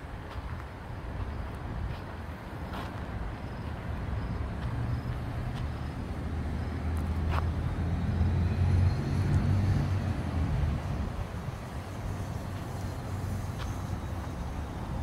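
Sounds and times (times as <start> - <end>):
vehicle passing: 3.9 - 15.0.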